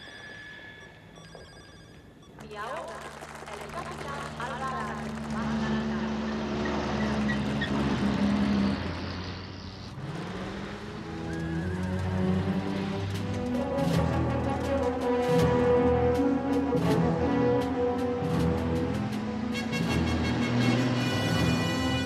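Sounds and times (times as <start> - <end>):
voices: 2.4 - 6.4
vehicle engine running: 2.7 - 20.9
film score music: 10.6 - 22.0.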